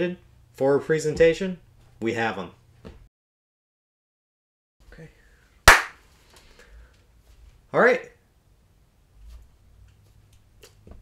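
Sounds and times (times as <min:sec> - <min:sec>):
hand clap: 0:05.7 - 0:06.0.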